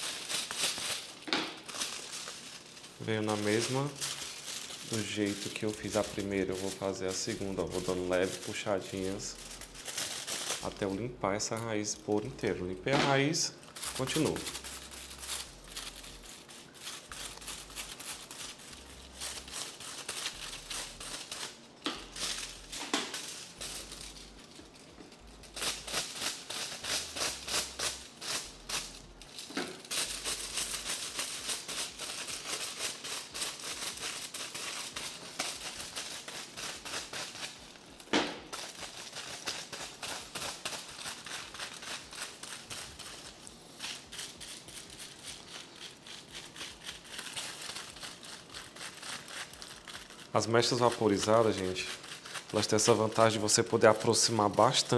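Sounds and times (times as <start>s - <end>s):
foil crinkling: 0.0s - 54.9s
brush strokes on hair: 2.5s - 12.7s, 50.3s - 54.9s.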